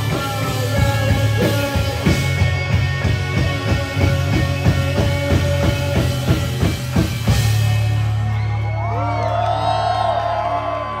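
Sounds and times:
rock band chord ringing: 0.0 - 8.4
audience whooping and cheering: 7.6 - 11.0.

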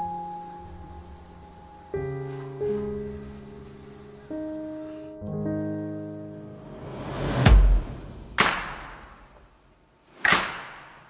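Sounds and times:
sharp hit: 6.8 - 9.4.

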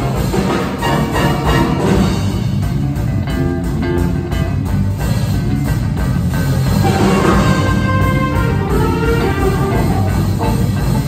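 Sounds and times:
jazz big band playing: 0.0 - 11.0.

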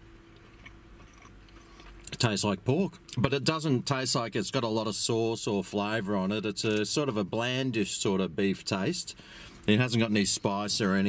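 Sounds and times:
steady low hum: 0.0 - 11.0
faint chewing: 0.3 - 2.2.

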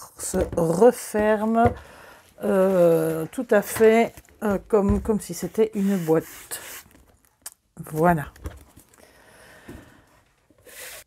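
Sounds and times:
cardboard handling noise: 0.2 - 7.2.

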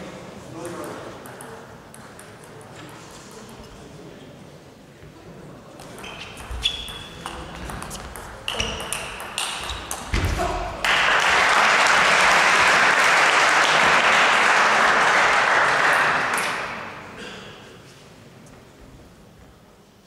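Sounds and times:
spectators clapping: 10.8 - 17.0.

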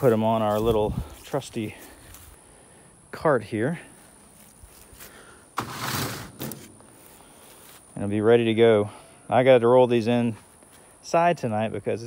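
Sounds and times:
plastic pot scraping across cart: 5.6 - 6.7.

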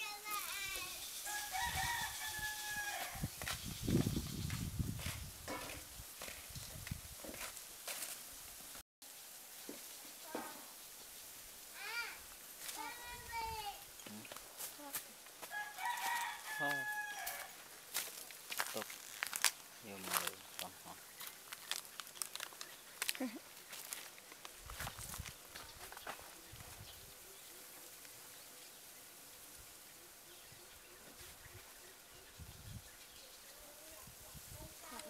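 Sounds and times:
rooster crowing: 1.2 - 3.3, 15.4 - 17.6.

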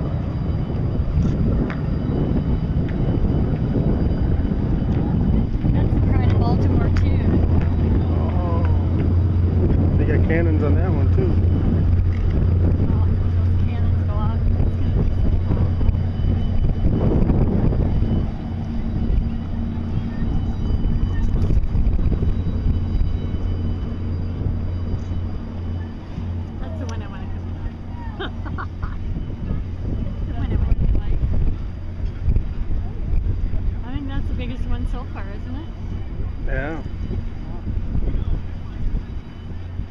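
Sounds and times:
boat engine drone: 0.0 - 39.9
wind on microphone: 0.0 - 39.9
onlookers' voices: 4.6 - 39.9.

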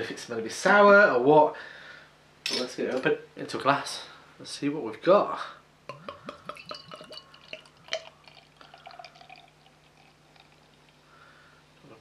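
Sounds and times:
beer pouring into a glass: 5.9 - 11.3.

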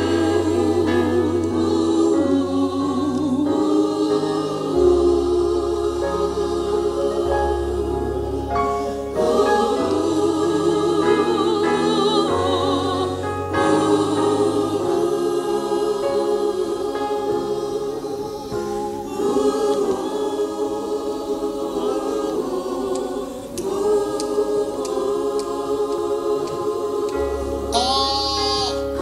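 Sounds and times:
choir singing in parts: 0.0 - 29.0.

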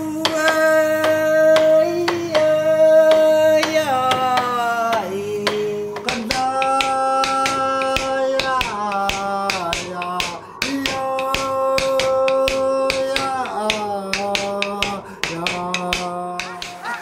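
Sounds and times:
person singing long notes: 0.0 - 17.0.

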